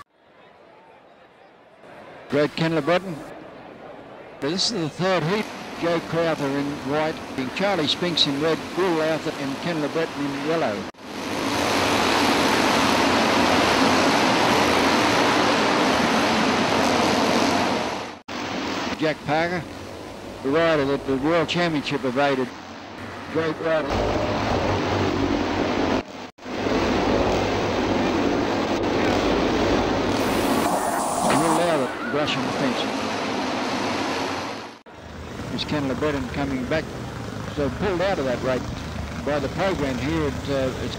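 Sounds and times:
motorcycles racing: 28.7s - 33.4s, 35.0s - 40.9s.

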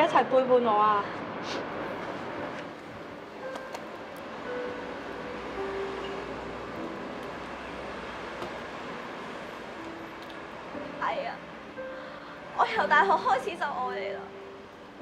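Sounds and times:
city road traffic hum: 0.0s - 15.0s.

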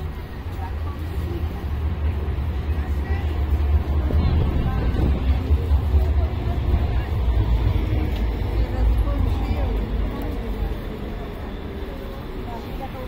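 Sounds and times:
heavy low rumble: 0.0s - 12.6s
passers-by talking: 0.0s - 13.0s.

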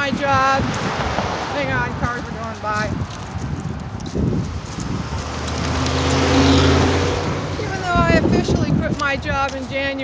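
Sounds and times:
car driving past: 5.0s - 7.8s.

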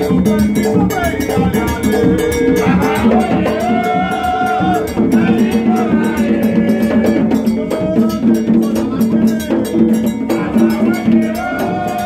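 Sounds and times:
metallic percussion strokes: 0.0s - 12.0s.

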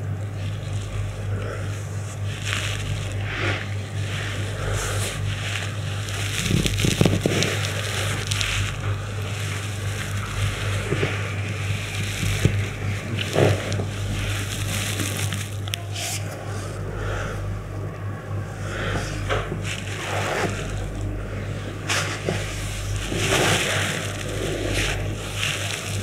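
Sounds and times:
hands rustling on cloth and skin: 0.0s - 16.8s, 18.7s - 26.0s
low hum and hiss: 0.0s - 26.0s.

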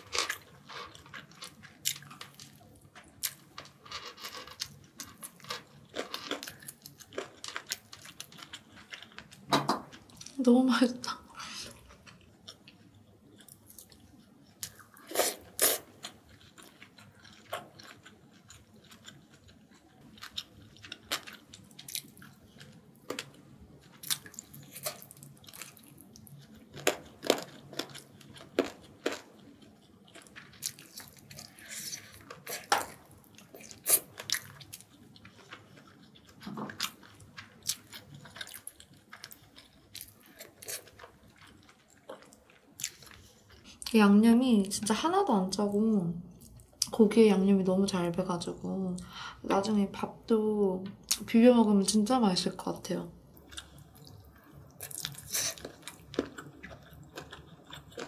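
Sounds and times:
person chewing food: 0.0s - 10.4s, 11.4s - 43.9s, 53.2s - 58.0s.

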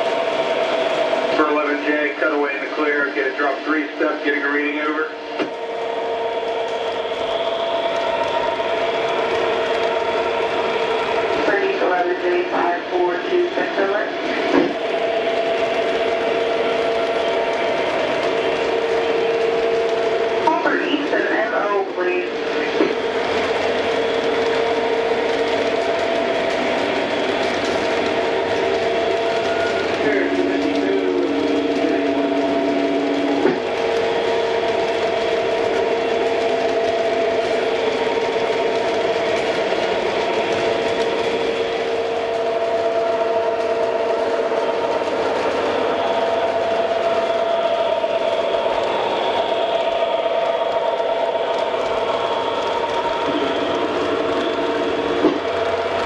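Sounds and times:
humming tones: 2.6s - 56.0s.

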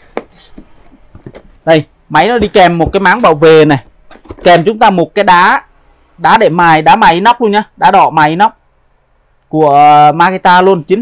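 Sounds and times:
cardboard and packing rustling: 0.0s - 1.7s, 2.3s - 4.8s.

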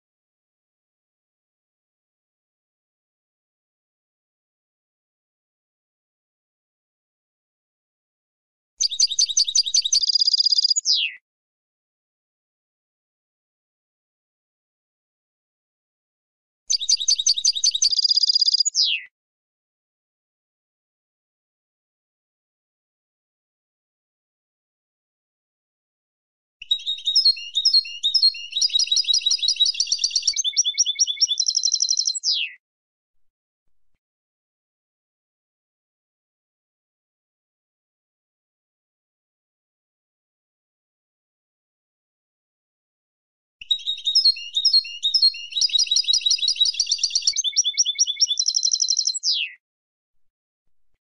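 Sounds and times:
finch chattering twitter: 8.9s - 11.1s, 26.9s - 32.5s, 43.7s - 49.5s.

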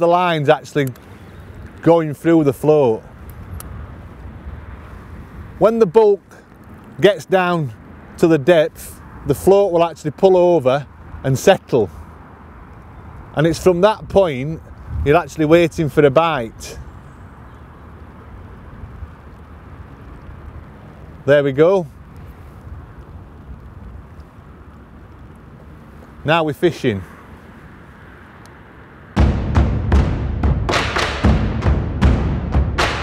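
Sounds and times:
even outdoor rush: 0.0s - 33.0s
faint clicks: 0.8s - 1.9s, 22.0s - 26.2s, 28.4s - 28.6s
low rumble: 29.2s - 33.0s.

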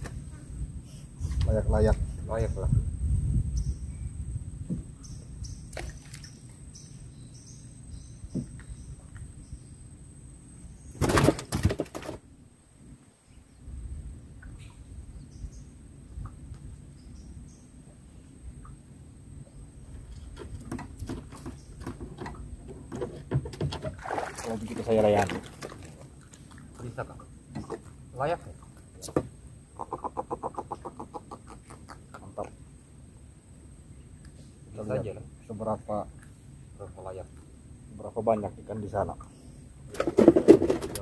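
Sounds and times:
wind and water rumble: 0.0s - 41.0s
faint bird chirps: 3.4s - 11.0s.

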